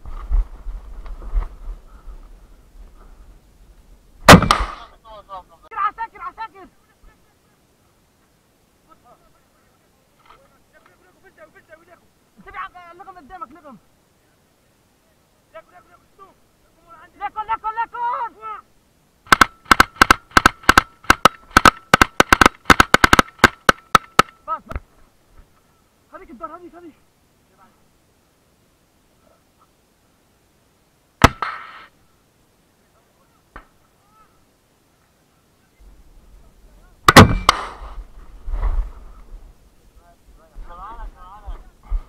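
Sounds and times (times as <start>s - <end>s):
rocket launcher blast: 4.2s - 4.9s, 37.1s - 38.0s
sharp crack: 4.2s - 5.0s, 19.3s - 24.8s, 31.2s - 32.0s, 37.0s - 38.8s
machine gun firing bursts: 19.3s - 23.8s.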